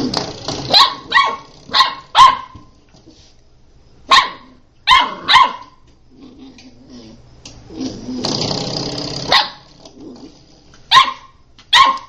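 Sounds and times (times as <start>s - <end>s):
puppy barking: 0.7s - 2.7s, 4.1s - 5.8s, 9.3s - 9.7s, 10.9s - 12.0s.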